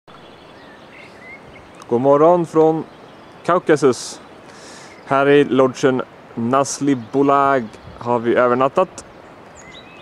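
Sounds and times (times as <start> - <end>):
faint outdoor background hiss: 0.1 - 10.0
songbirds chirping: 0.1 - 10.0
man speaking: 1.9 - 2.9, 3.5 - 4.2, 5.1 - 9.0.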